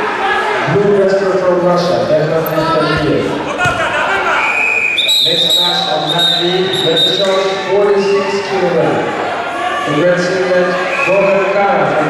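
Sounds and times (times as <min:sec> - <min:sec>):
voices calling out in hall: 0:00.0 - 0:12.0
referee's whistle blast: 0:04.4 - 0:07.7.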